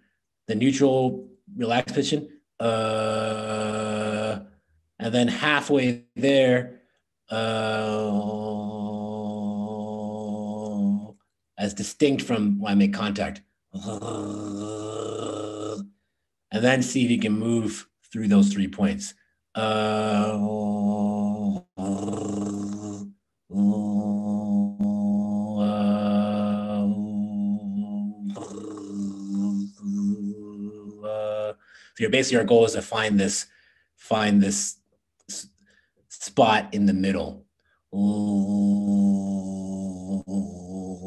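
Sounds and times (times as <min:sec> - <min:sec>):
man holding low vowel: 0:02.6 - 0:05.2, 0:07.3 - 0:11.1, 0:13.8 - 0:15.8, 0:19.6 - 0:32.6, 0:37.9 - 0:41.0.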